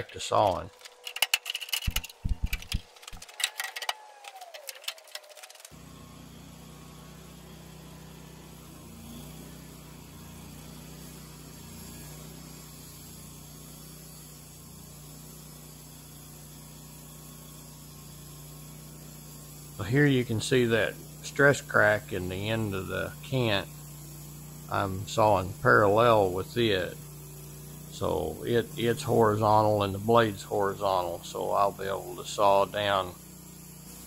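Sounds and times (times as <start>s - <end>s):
sharp clicks and metallic clatter: 0.0s - 5.8s
sawmill running with low hum: 0.0s - 34.0s.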